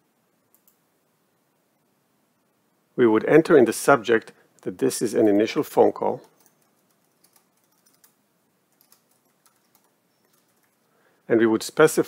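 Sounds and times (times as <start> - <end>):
keyboard typing: 0.5 - 0.8, 6.1 - 10.9.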